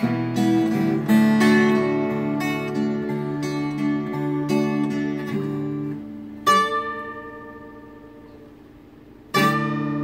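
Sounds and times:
acoustic guitar picking: 0:00.0 - 0:10.0
guitar chord ringing: 0:00.0 - 0:10.0.

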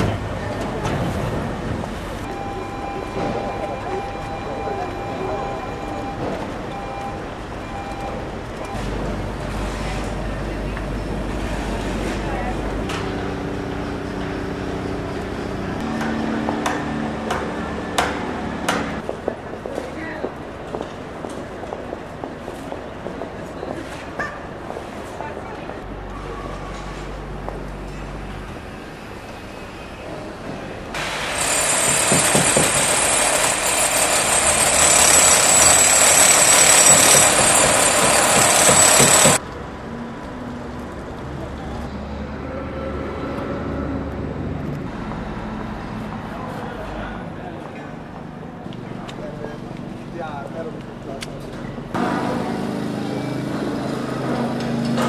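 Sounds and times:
running machinery: 0:31.0 - 0:39.4.

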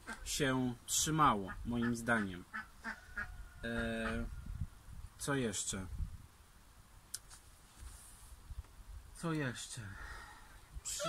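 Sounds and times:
man's drawn-out hesitation sound: 0:03.6 - 0:04.4.

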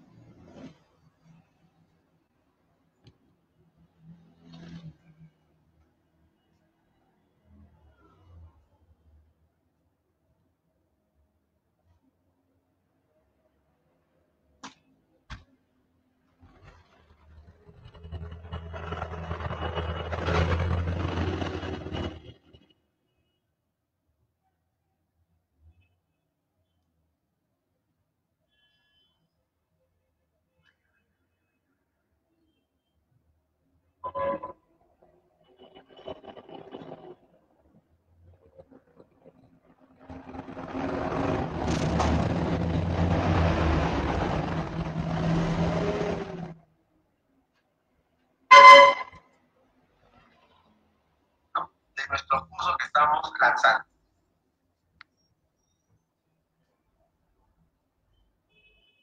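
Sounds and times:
rushing noise: 0:40.1 - 0:46.6.

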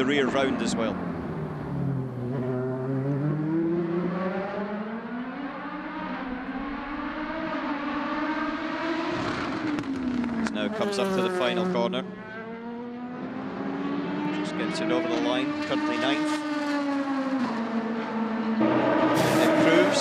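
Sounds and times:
race car engine revving: 0:00.0 - 0:20.0.

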